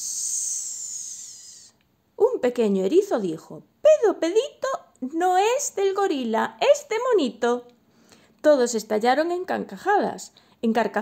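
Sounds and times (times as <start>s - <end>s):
person hissing through teeth: 0.0s - 1.8s.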